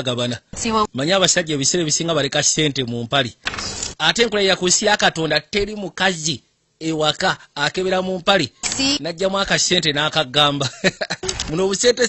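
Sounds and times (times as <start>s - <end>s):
person speaking: 0.0s - 12.0s
short hiss: 3.4s - 4.0s.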